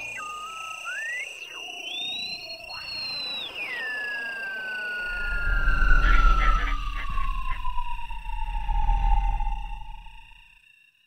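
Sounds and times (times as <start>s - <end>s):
steady high-pitched tones: 0.0s - 10.6s.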